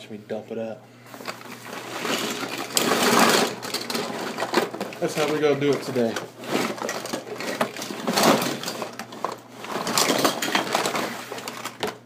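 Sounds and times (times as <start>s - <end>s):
toy cars clattering: 2.0s - 12.0s.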